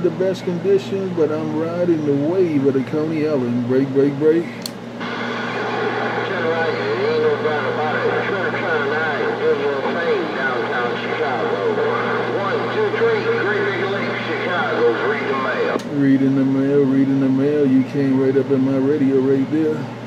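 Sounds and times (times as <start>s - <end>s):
radio static: 0.0s - 19.9s
steady low hum: 0.0s - 20.0s
garbled voice over radio speaker: 5.5s - 19.6s.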